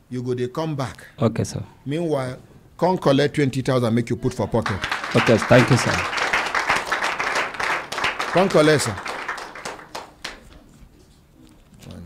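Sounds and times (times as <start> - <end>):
hand clapping: 4.6 - 10.8.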